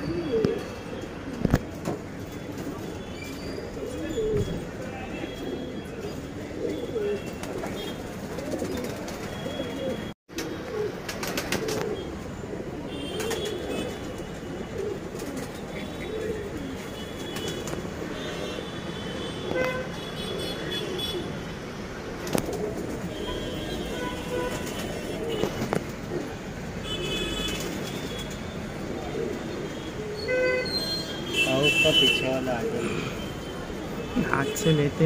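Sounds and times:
pigeons cooing: 0.0s - 34.2s.

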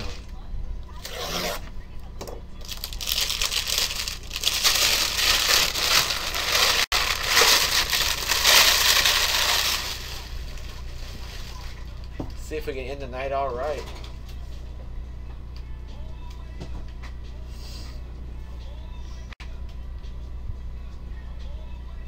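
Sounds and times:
plastic shrink wrap crinkling: 2.6s - 11.9s.

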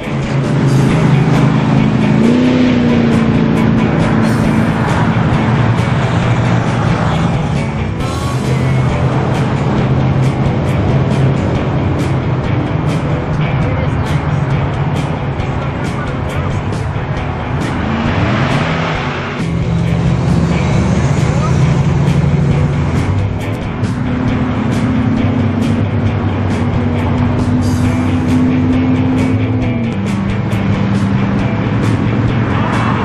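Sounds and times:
car engines driving past: 0.0s - 33.0s
music playing: 0.0s - 33.0s.

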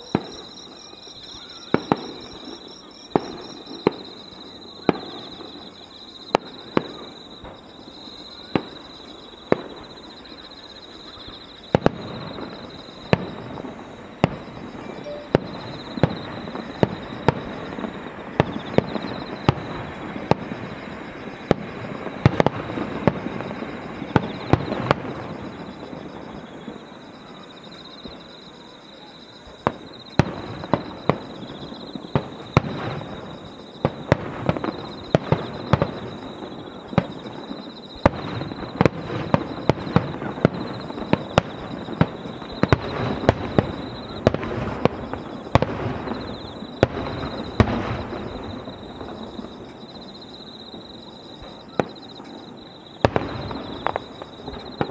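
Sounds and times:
firework rumble and crackle: 0.0s - 54.9s
firework shells bursting: 53.0s - 54.9s.

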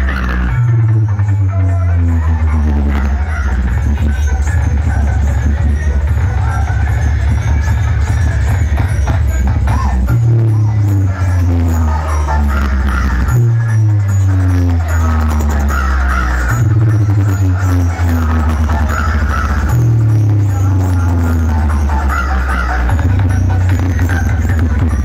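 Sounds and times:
loud electronic dance music: 0.0s - 25.0s.

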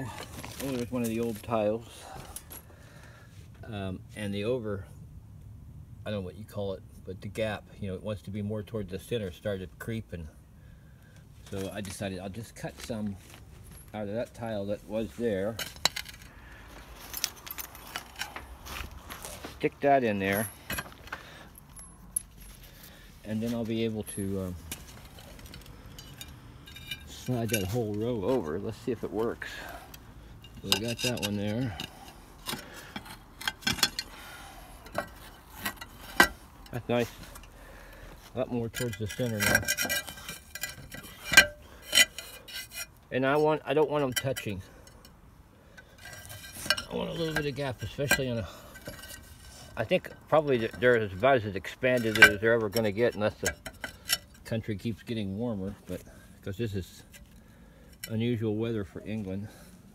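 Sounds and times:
clay roof tiles clinking: 20.1s - 55.0s
roof tiles scraping: 30.5s - 43.0s.

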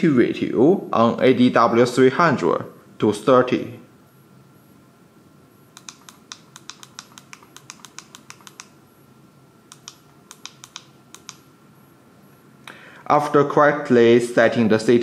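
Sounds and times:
keypad buttons clicking: 5.8s - 8.8s, 9.7s - 11.4s.

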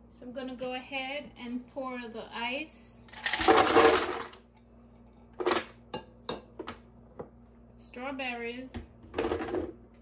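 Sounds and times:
ice cubes clattering into a jar: 3.1s - 4.3s.

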